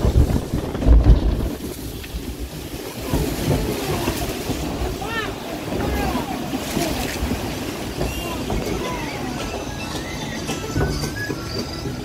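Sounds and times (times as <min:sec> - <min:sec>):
water rushing and spraying: 0:00.0 - 0:12.0
wind buffeting microphone: 0:00.0 - 0:12.0
riders' voices: 0:02.8 - 0:10.1.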